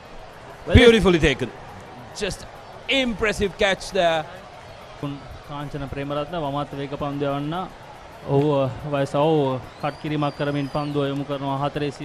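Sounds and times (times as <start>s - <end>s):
man commentating: 0.7s - 4.2s.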